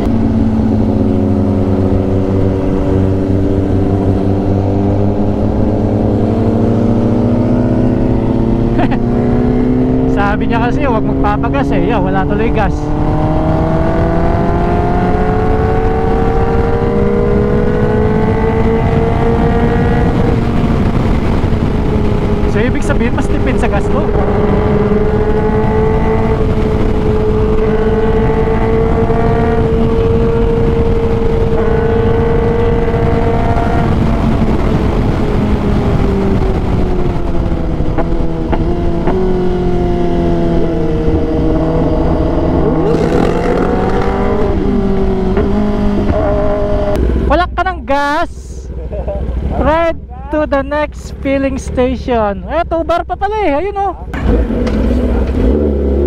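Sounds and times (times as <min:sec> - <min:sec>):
heavy wind noise: 0:00.0 - 0:56.0
motorcycle engine at speed: 0:00.0 - 0:56.0.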